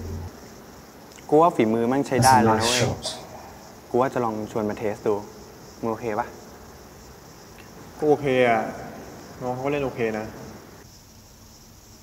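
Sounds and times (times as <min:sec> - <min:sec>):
high-pitched background hiss: 0:00.0 - 0:12.0
young man speaking: 0:02.1 - 0:03.5.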